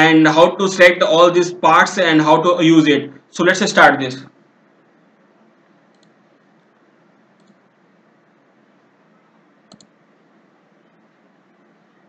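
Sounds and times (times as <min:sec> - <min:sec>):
low steady hiss: 0:00.0 - 0:12.0
computer mouse clicks: 0:05.9 - 0:06.2, 0:07.4 - 0:07.7, 0:09.7 - 0:10.0.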